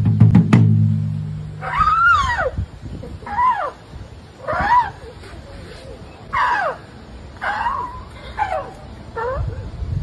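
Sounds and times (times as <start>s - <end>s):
drum ringing low: 0.0s - 2.0s
elephant high calls: 1.6s - 9.7s.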